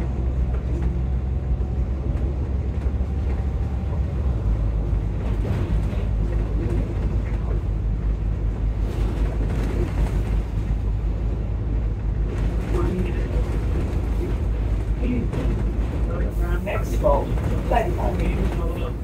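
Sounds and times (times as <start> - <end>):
diesel bus engine rumble: 0.0 - 19.0.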